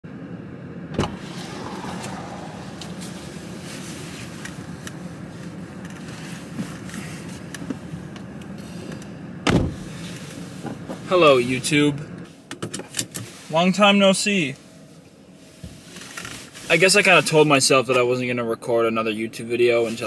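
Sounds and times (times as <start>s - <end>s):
thump: 1.0s - 2.0s
steady low hum: 1.0s - 4.6s.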